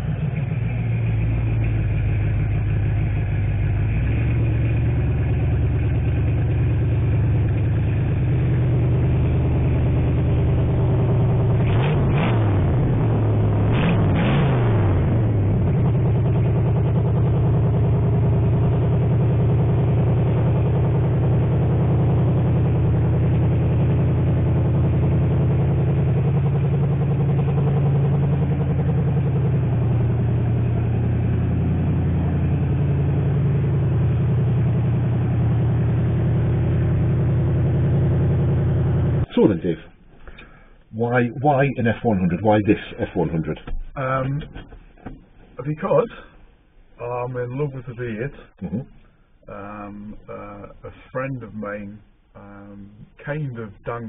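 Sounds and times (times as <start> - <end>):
pickup truck engine idling: 0.0 - 11.8, 14.6 - 40.9.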